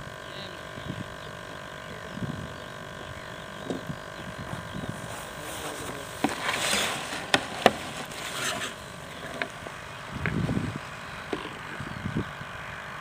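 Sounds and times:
steady outdoor hiss: 0.0s - 13.0s.

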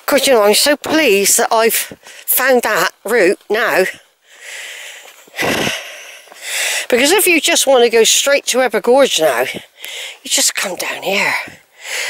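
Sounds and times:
woman breathing: 3.9s - 7.0s, 9.5s - 10.3s, 11.3s - 12.0s.

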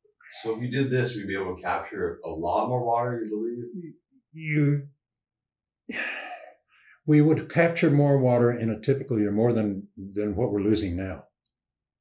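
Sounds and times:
person speaking: 0.3s - 4.8s, 7.1s - 11.2s
person sighing: 5.9s - 6.5s
faint breath: 5.9s - 7.1s.

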